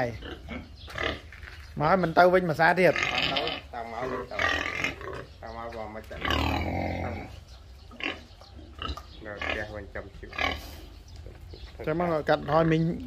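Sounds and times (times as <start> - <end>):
pigs grunting and squealing: 0.0 - 1.3, 2.4 - 11.0.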